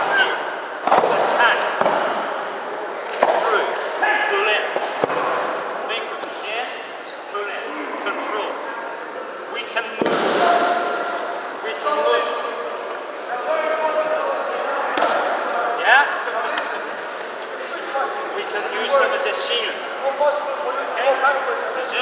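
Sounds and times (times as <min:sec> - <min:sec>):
many voices chattering: 0:00.0 - 0:22.0.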